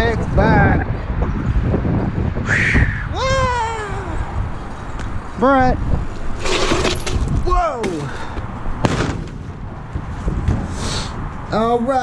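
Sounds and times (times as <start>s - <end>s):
bike tyres rolling on pavement: 4.4s - 8.6s.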